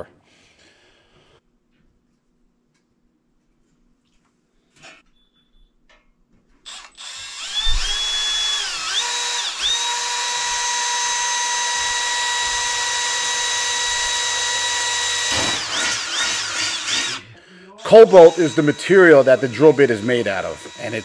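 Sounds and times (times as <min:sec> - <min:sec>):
cordless drill drilling through metal: 0:06.7 - 0:21.0.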